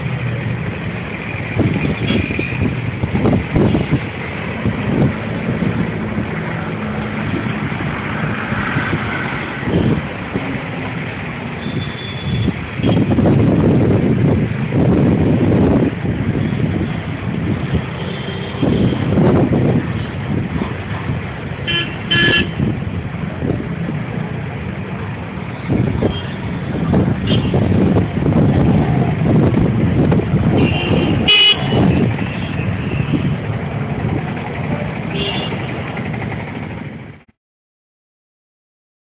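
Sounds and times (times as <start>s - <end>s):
road traffic rumble: 0.0s - 37.3s
wind buffeting microphone: 1.3s - 37.2s
vehicle horn honking: 21.6s - 22.7s, 30.6s - 33.2s, 35.1s - 35.6s.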